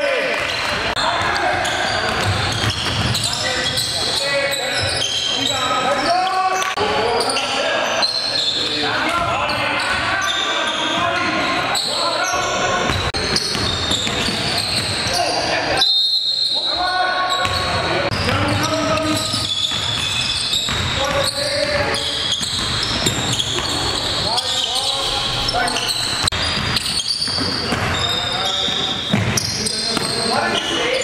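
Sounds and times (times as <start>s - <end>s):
players calling out: 0.0s - 31.0s.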